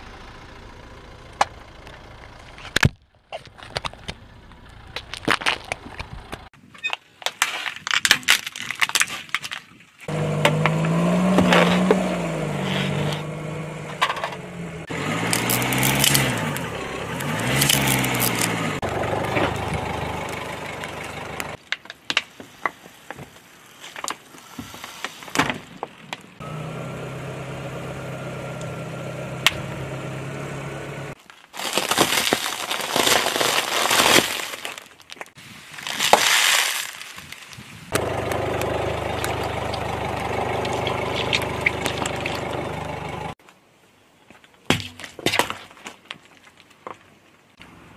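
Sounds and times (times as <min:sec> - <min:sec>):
car engine running: 0:00.0 - 0:02.8, 0:10.1 - 0:21.6, 0:26.4 - 0:31.2, 0:37.9 - 0:43.4
plastic toys cracking and crunching: 0:04.9 - 0:09.8, 0:15.3 - 0:18.5, 0:31.2 - 0:38.4.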